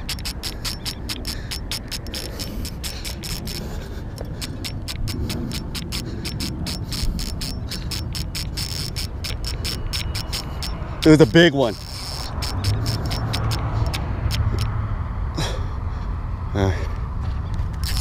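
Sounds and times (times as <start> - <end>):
fishing reel drag clicking: 0.0 - 14.7, 17.8 - 18.0.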